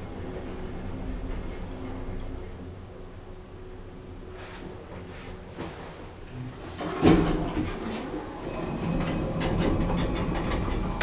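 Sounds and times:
elevator doors rumbling and rattling: 6.7 - 11.0
elevator clunk: 8.4 - 11.0.

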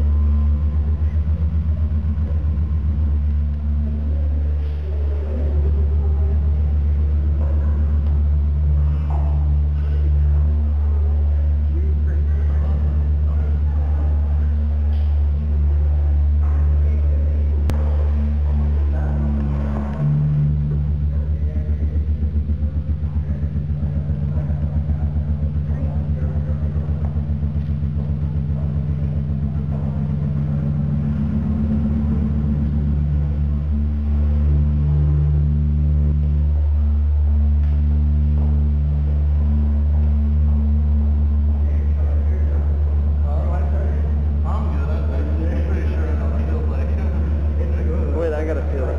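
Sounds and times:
deep electronic bass drone: 0.0 - 48.9.

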